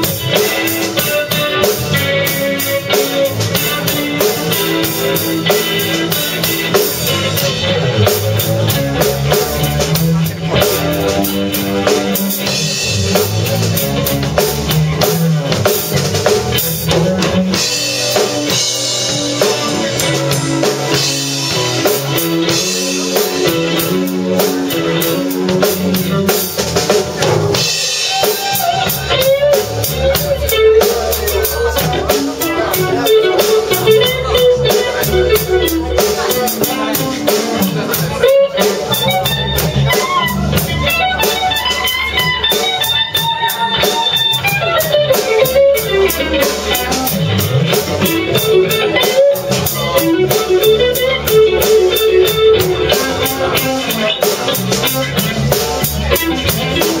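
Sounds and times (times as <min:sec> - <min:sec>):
drum kit: 0:00.0 - 0:57.0
electric bass: 0:00.0 - 0:57.0
electric guitar: 0:00.0 - 0:57.0.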